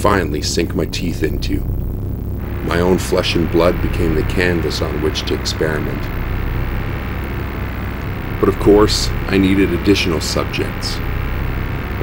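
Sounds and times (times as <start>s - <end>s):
low droning rumble: 0.0s - 12.0s.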